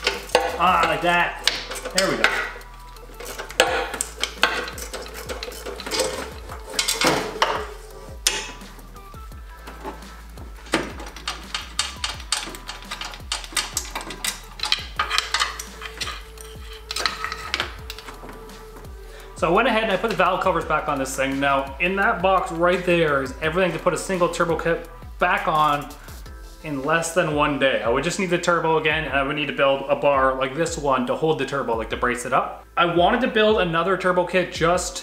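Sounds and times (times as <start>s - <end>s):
wrench clinking against metal: 0.0s - 9.0s, 9.6s - 18.9s.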